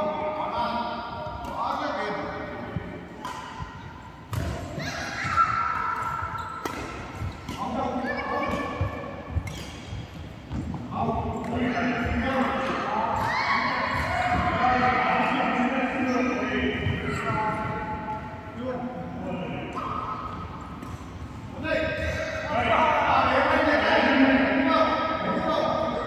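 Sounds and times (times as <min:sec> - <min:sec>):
shoes squeaking on court floor: 0:05.2 - 0:11.6
racket striking shuttlecock: 0:05.7 - 0:07.8.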